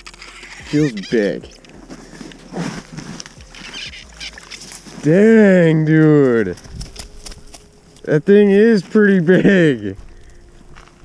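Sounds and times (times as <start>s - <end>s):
faint scuffing and rustling: 1.1s - 11.0s.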